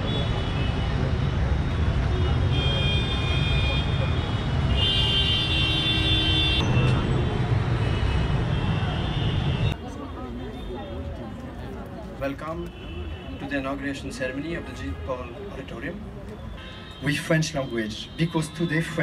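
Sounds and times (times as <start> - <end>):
city street traffic: 0.0 - 19.0
car horns honking: 2.2 - 9.8.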